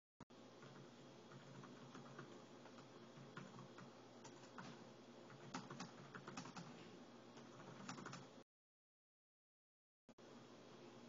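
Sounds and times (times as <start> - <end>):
low steady hum: 0.3 - 8.4, 10.1 - 11.0
typing on keyboard: 0.6 - 6.8, 7.4 - 8.3.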